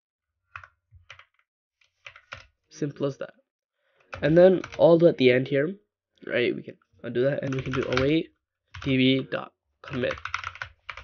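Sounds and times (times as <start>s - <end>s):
computer keyboard clicks: 0.6s - 1.4s, 2.0s - 2.5s, 7.5s - 8.1s, 9.9s - 11.0s.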